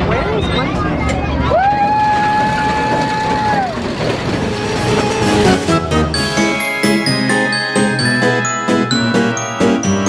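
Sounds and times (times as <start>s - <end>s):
roller coaster rumbling on track: 0.0s - 10.0s.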